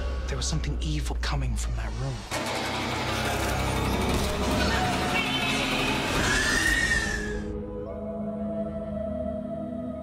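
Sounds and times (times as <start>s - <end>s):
high shrill wail: 5.8s - 7.5s.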